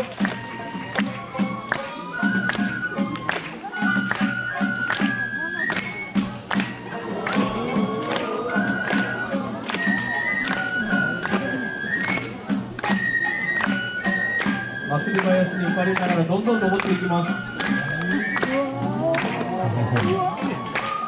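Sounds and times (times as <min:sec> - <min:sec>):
crowd voices: 0:00.0 - 0:21.0
drum and percussion strikes: 0:00.0 - 0:21.0
flute playing held notes: 0:00.0 - 0:21.0.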